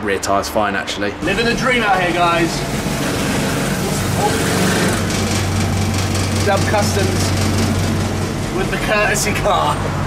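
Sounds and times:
air compressor humming: 0:01.2 - 0:10.0.

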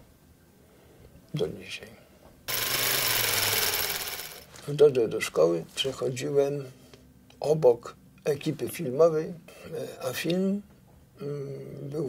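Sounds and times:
film projector clattering: 0:02.5 - 0:04.5.

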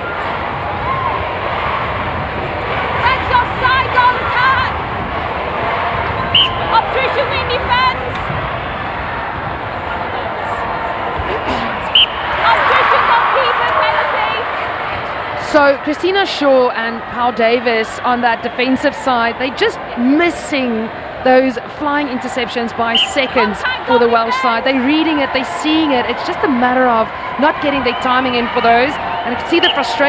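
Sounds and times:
crowd voices: 0:00.0 - 0:30.0.

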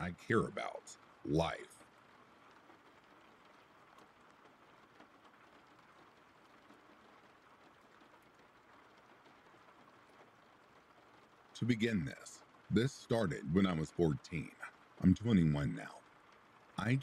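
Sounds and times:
soft hiss of rainfall: 0:00.0 - 0:17.0.

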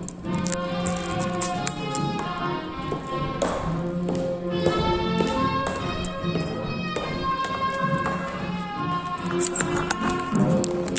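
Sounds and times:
recorded music: 0:00.0 - 0:10.9
tap shoes on hard floor: 0:00.7 - 0:10.9.

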